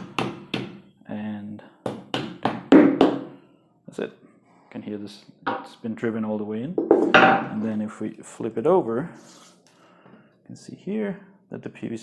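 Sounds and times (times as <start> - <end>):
hammer knocking on plastic pipe: 0.0 - 0.8, 1.8 - 3.3.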